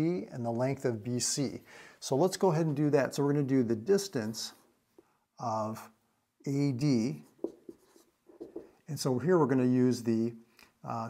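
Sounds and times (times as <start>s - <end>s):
marker squeaking on whiteboard: 7.2s - 8.8s.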